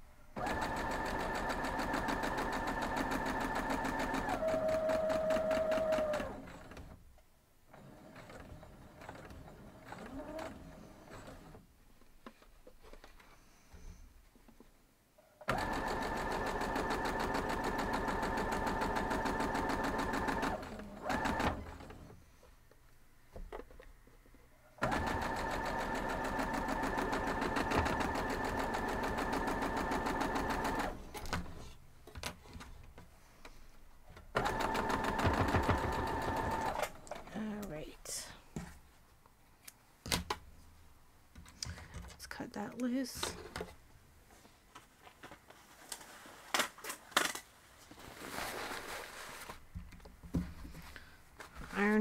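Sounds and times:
sewing machine stitching: 0.4s - 7.0s, 7.7s - 11.6s, 15.4s - 22.2s, 24.8s - 31.8s, 34.3s - 37.6s
fabric handling: 44.3s - 49.7s.

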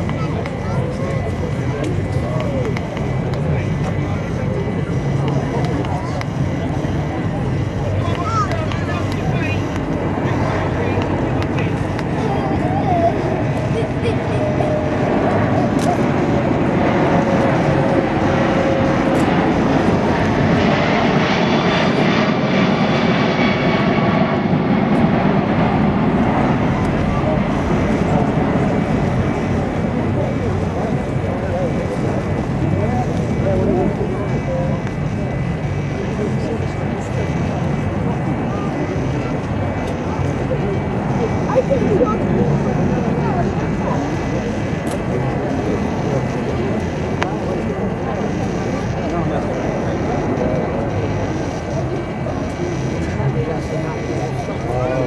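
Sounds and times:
high jet engine whine: 0.0s - 55.0s
jet roar passing overhead: 0.0s - 55.0s.

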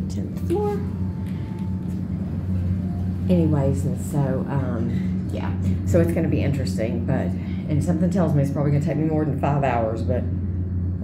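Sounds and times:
elevator hum and rumble: 0.0s - 11.0s.

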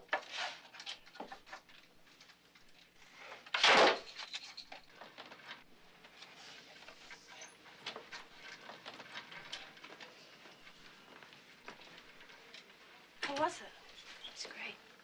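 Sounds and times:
clicks and rustles handling wood: 0.0s - 14.4s.

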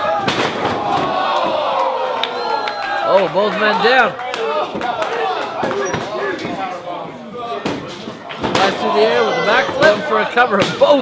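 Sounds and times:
crowd yelling: 0.0s - 6.8s, 8.6s - 11.0s.

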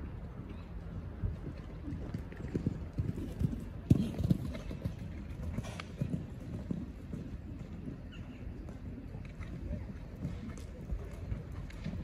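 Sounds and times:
horse hooves on sand: 0.0s - 12.0s.

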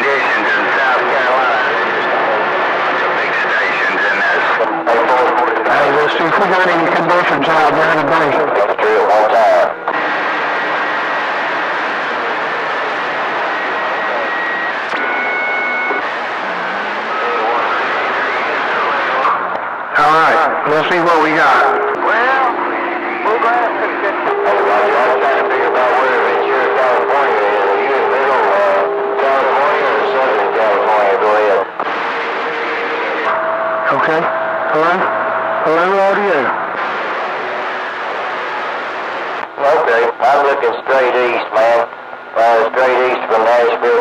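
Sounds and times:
steady radio whistle: 0.0s - 6.3s, 8.5s - 19.5s, 20.2s - 44.0s
radio static hiss: 0.0s - 44.0s.

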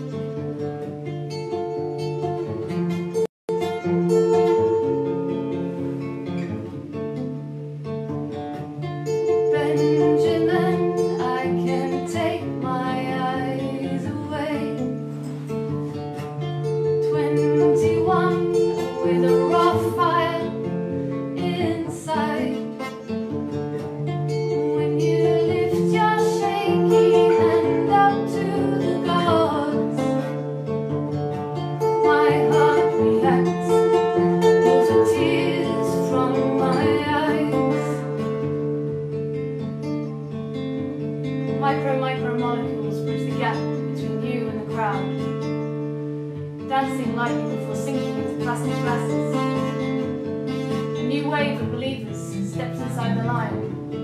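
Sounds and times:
acoustic guitar: 0.0s - 54.0s
woman singing: 9.3s - 15.0s, 17.0s - 22.9s, 24.4s - 30.4s, 31.8s - 38.3s, 41.5s - 45.3s, 46.6s - 49.8s, 50.8s - 53.9s.

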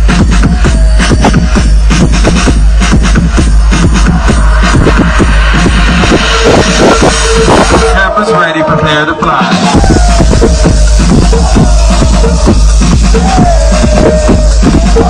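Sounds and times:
electronic dance music: 0.0s - 15.0s.

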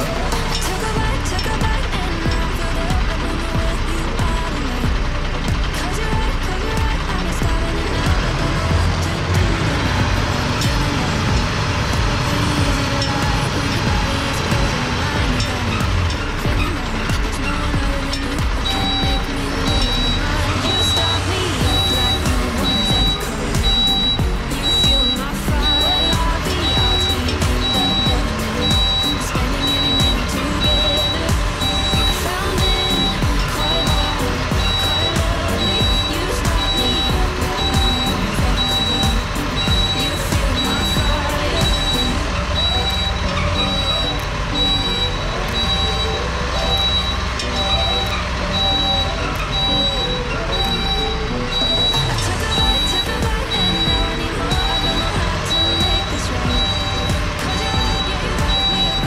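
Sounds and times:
background music: 0.0s - 59.0s
diesel engine running: 0.0s - 59.0s
reversing alarm beeping: 0.0s - 59.0s.

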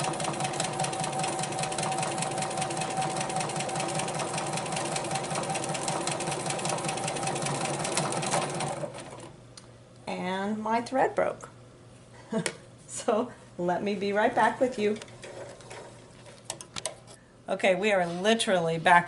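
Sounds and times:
sewing machine stitching: 0.0s - 9.3s.

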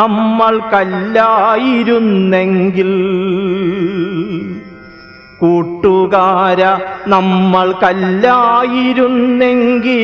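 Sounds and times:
man chanting with vibrato: 0.0s - 10.0s.

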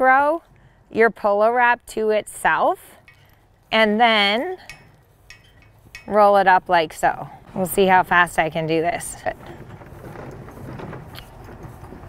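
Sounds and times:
fabric rustling: 8.8s - 12.0s.

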